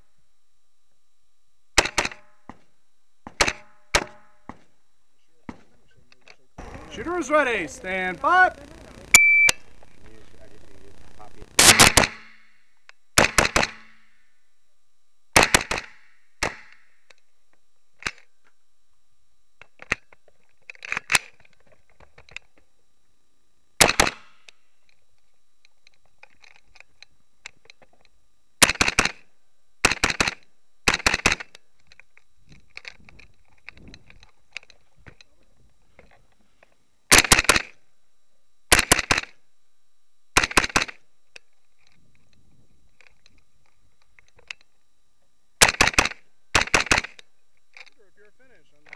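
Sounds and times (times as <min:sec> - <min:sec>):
rifle gunshots: 0:01.8 - 0:02.2, 0:11.4 - 0:12.4, 0:13.2 - 0:14.0, 0:15.4 - 0:16.7, 0:23.8 - 0:24.3, 0:37.1 - 0:37.8, 0:38.7 - 0:39.3, 0:40.4 - 0:41.0, 0:45.6 - 0:47.2
shot timer beep: 0:09.1 - 0:09.7.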